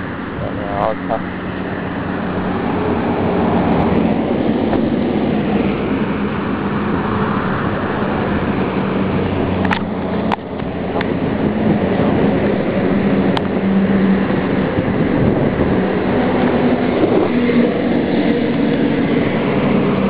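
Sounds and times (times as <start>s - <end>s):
heavy vehicle engine drone: 0.0s - 20.0s
highway traffic noise: 0.0s - 20.0s.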